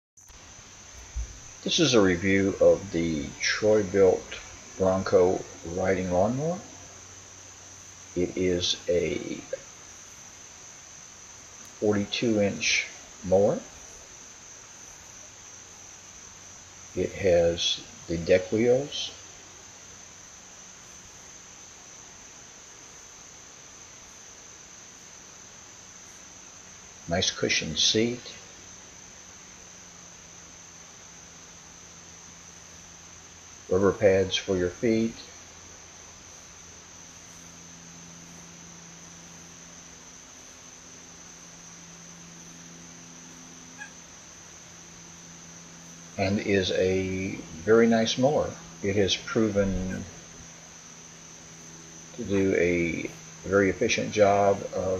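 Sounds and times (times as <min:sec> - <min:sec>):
crickets trilling: 0:00.2 - 0:54.9
high-pitched insect chorus: 0:00.2 - 0:54.9
low hum: 0:00.3 - 0:54.9.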